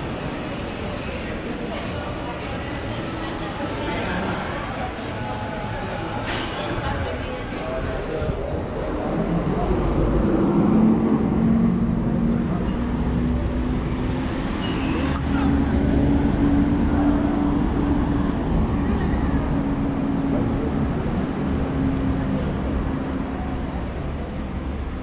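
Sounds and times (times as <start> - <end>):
traffic noise: 0.0 - 25.0
vehicle engine droning: 7.6 - 25.0.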